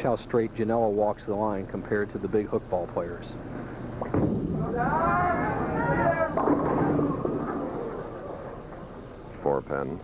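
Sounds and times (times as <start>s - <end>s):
bowling pins crashing: 4.0s - 8.9s
bowling ball rolling: 4.0s - 9.1s.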